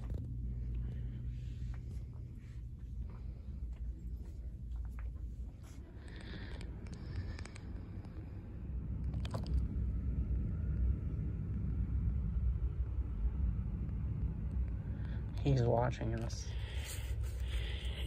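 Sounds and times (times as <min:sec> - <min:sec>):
steady low rumble: 0:00.0 - 0:18.0.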